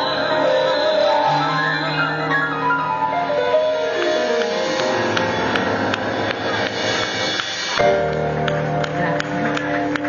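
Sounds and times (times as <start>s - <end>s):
band playing held chords: 0.0s - 10.0s
jazz drum kit: 2.9s - 9.6s.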